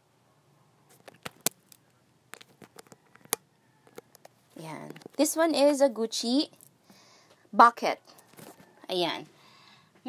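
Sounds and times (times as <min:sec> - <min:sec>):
phone handling clicks and taps: 0:02.4 - 0:05.2.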